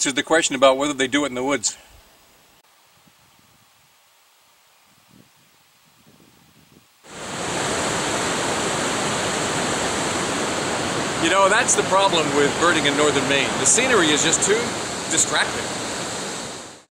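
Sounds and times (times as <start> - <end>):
river rapids rushing: 7.1 - 16.9.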